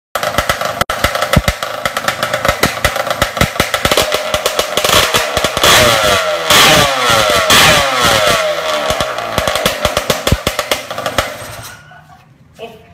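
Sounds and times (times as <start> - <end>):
motorcycle engine revving: 0.2 - 11.8.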